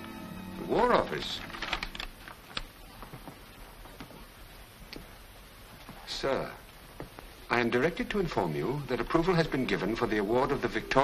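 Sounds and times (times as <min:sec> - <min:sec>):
paper crackling and rustling: 0:00.8 - 0:04.3.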